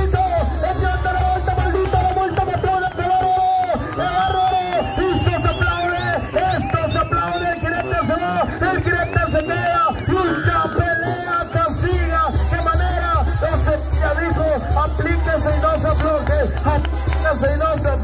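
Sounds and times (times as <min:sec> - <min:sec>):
brass band music: 0:10.2 - 0:18.0.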